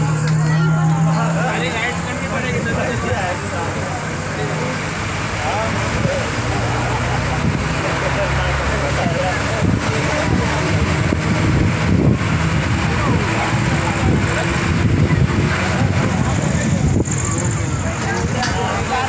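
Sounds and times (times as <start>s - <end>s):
babble of voices: 0.0s - 19.0s
road traffic: 0.0s - 19.0s
vehicle engine running: 0.0s - 19.0s.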